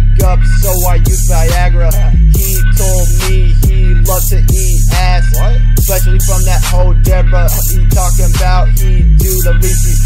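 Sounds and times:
hip hop beat with heavy bass: 0.0 - 10.0
rapped vocal: 0.0 - 10.0.

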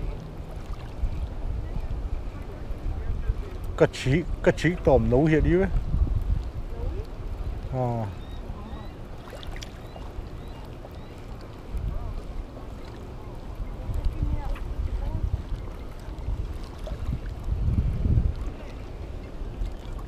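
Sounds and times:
steady low rumble: 0.0 - 9.3, 10.2 - 20.0
wind buffeting microphone: 0.0 - 20.0.

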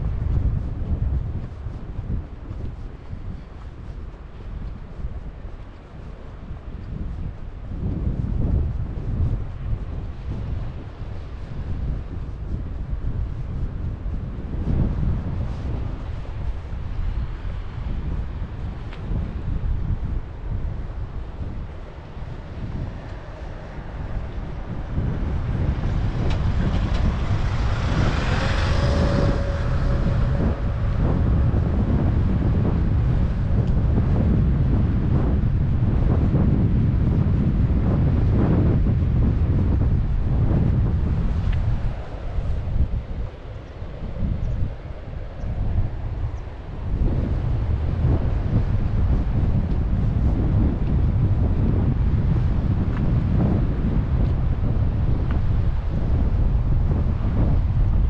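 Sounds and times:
wind buffeting microphone: 0.0 - 58.0
pickup truck passing: 25.0 - 33.4.

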